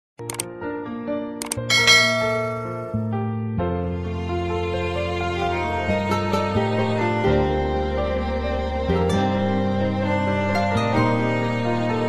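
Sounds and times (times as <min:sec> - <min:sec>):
sustained instrumental music: 0:01.4 - 0:12.0
bright ringing chime: 0:01.7 - 0:03.1.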